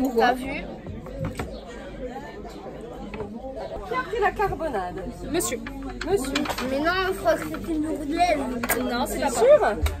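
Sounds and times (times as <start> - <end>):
diners chattering: 0.0 - 10.0.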